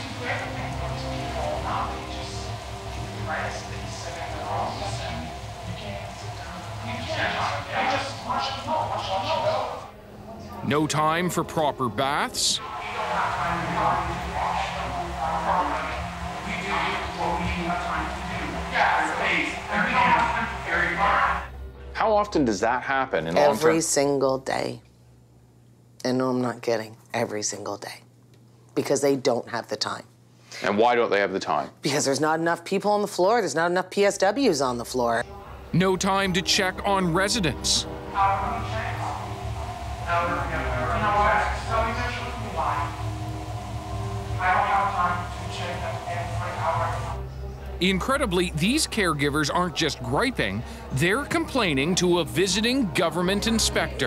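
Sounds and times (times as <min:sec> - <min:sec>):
steady low hum: 0:00.0 - 0:30.8, 0:32.8 - 0:54.0.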